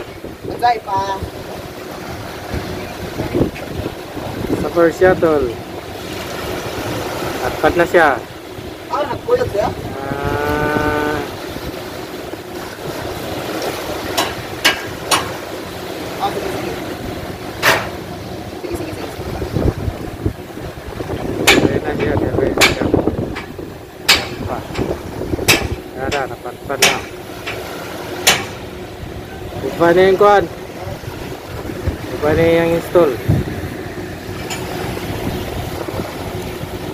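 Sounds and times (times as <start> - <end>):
wind noise on microphone: 0.0 - 5.4, 9.3 - 13.2, 19.2 - 26.7, 30.9 - 33.9, 34.6 - 36.9
ship engines rumbling: 0.0 - 36.9.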